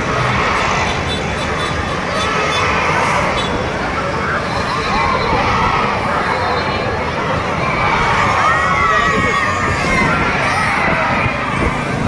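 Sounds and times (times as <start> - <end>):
children shouting and cheering: 4.6 - 12.0.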